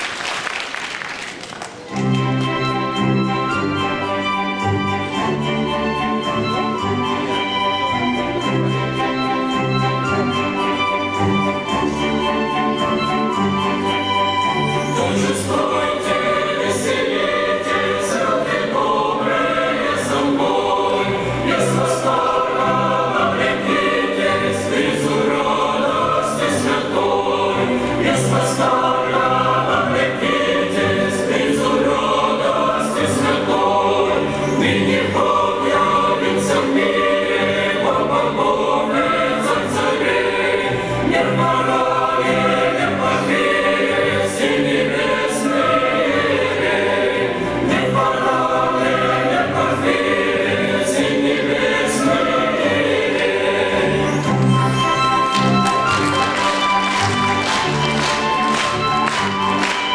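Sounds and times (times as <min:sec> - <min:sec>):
mixed choir singing a carol: 0:02.6 - 0:59.9.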